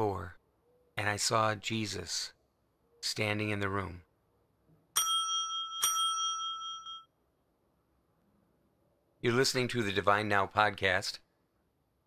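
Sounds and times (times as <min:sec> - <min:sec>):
small bell ringing: 0:05.0 - 0:07.1.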